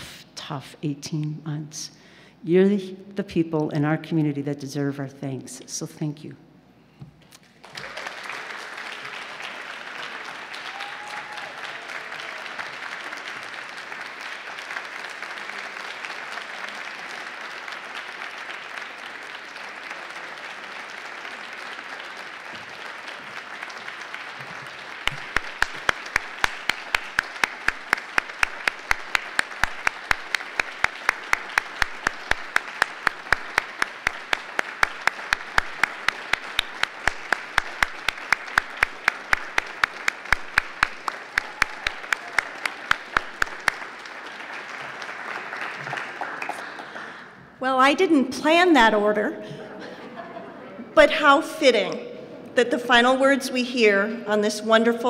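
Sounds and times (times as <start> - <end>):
loud close hand claps: 7.4 - 47.4
audience applauding: 7.4 - 47.6.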